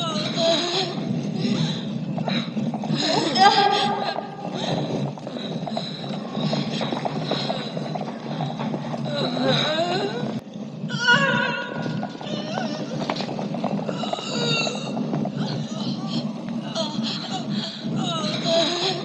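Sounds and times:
hooves clopping on stone: 0.0s - 19.0s
voices: 0.0s - 19.0s.

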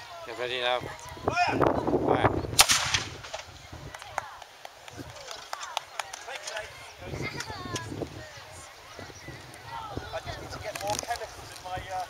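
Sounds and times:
faint distant voices: 0.0s - 12.0s
low rumble of cannon shot: 2.6s - 3.5s.

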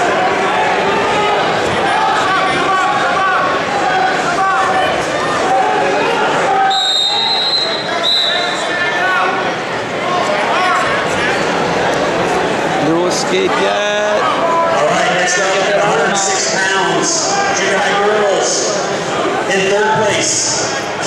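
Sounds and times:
people shouting and talking: 0.0s - 21.0s.

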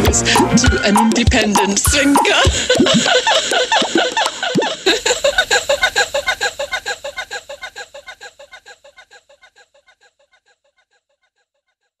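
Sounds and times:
electronic music: 0.0s - 3.2s.

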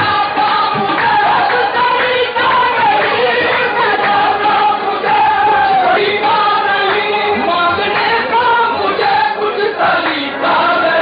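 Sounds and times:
group singing in chorus: 0.0s - 11.0s
harmonium: 0.0s - 11.0s
rhythmic beat: 0.0s - 11.0s.

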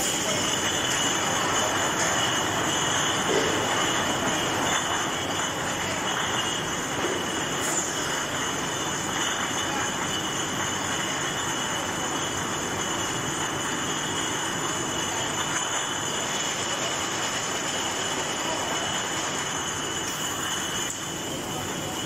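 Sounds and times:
factory machinery running: 0.0s - 22.0s
high-pitched machine whines: 0.0s - 22.0s.

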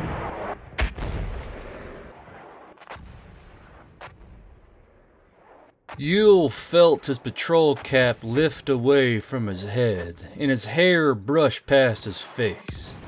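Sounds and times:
artillery shell explosions: 0.0s - 9.2s, 12.8s - 13.0s.

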